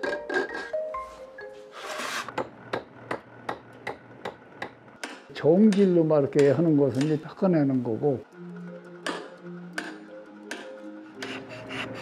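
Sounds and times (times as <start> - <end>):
hammer tapping chisel into stone: 9.0 - 11.3.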